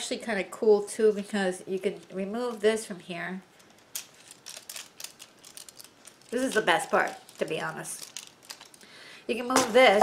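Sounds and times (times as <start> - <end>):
plastic clicks and rattles: 3.6 - 8.8.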